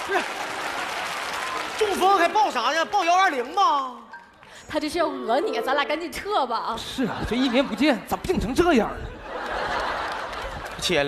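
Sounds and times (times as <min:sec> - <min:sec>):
audience applauding: 0:00.0 - 0:03.4, 0:09.3 - 0:11.0
person speaking: 0:05.0 - 0:07.2.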